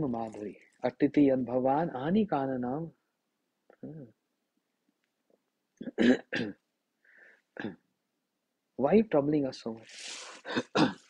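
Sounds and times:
man clearing his throat: 5.8s - 6.6s, 7.6s - 7.8s, 10.5s - 11.0s.

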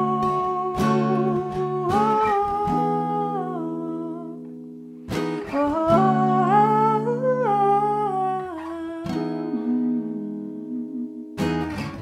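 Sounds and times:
acoustic guitar strums: 4.4s - 6.6s, 11.2s - 12.0s
woman humming: 5.6s - 11.4s.

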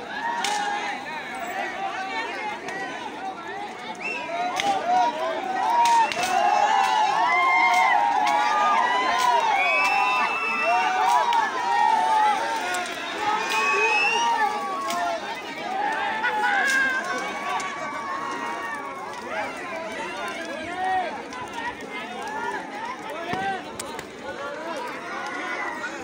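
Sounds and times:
crowd shouting: 0.0s - 26.0s
sharp cracks: 5.6s - 25.4s.

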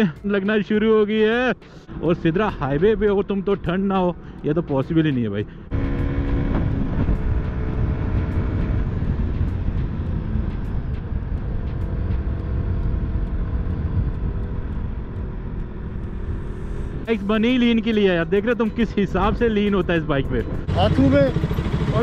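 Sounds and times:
motorcycle engine running: 2.6s - 22.0s
wind rumble on microphone: 5.7s - 17.1s.

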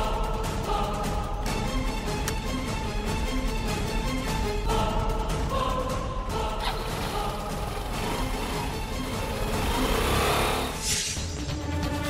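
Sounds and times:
background music: 0.0s - 12.0s
scooter engine revving: 6.6s - 10.8s.

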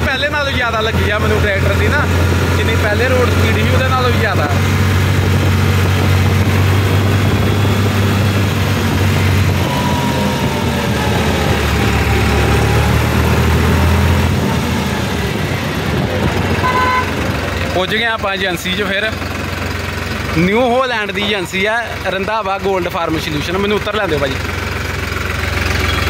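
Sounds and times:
tractor diesel engine running: 0.0s - 26.0s.

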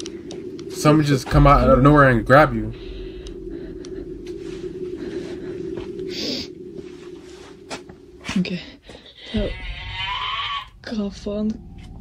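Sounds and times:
faint clicks: 0.0s - 0.9s
steady low hum: 0.0s - 12.0s
gliding screech with hiss: 9.2s - 10.7s.

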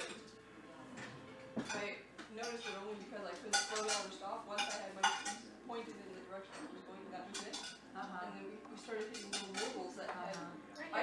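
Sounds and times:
cutlery clinking on a plate: 0.0s - 0.4s, 1.0s - 2.9s, 3.5s - 5.4s, 7.3s - 7.8s, 8.9s - 10.5s.

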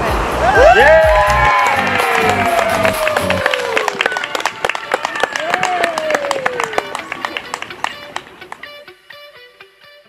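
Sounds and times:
crowd clapping: 0.5s - 8.7s
plucked guitar music: 6.7s - 10.0s.

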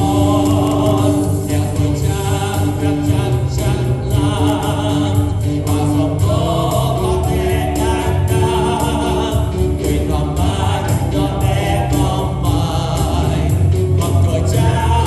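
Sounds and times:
choir singing a hymn: 0.0s - 15.0s
steady bass: 0.0s - 15.0s.

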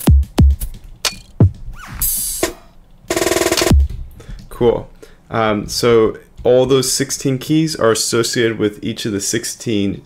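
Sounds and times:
buzzy drum hit: 0.0s - 0.8s, 1.4s - 4.1s
deep kick drum: 0.0s - 0.8s, 3.6s - 4.6s.

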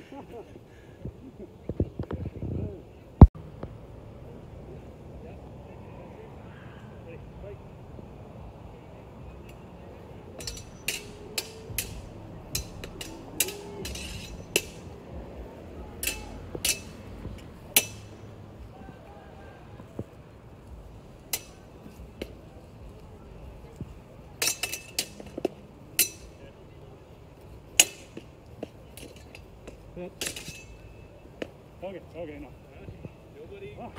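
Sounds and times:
sword blades clinking: 10.4s - 14.9s, 16.0s - 17.0s, 17.7s - 18.2s, 21.3s - 21.6s, 24.4s - 25.4s, 26.0s - 26.4s, 27.8s - 28.2s, 29.0s - 31.0s
longswords clashing: 10.4s - 15.0s, 16.0s - 17.0s, 17.7s - 18.3s, 21.2s - 22.4s, 24.4s - 26.4s, 27.8s - 30.8s.

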